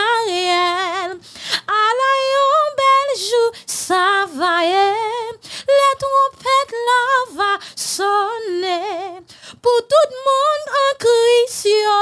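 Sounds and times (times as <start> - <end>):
woman singing a hymn unaccompanied: 0.0 - 12.0.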